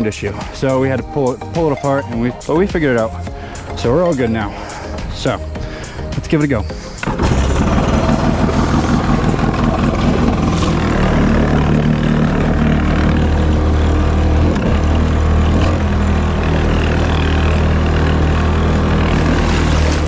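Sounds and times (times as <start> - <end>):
jet ski engine revving: 6.8 - 20.0.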